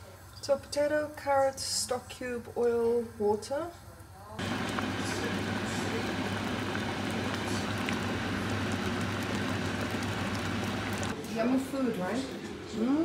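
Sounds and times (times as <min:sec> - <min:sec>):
soup boiling with bubbling hiss: 0:04.4 - 0:11.2.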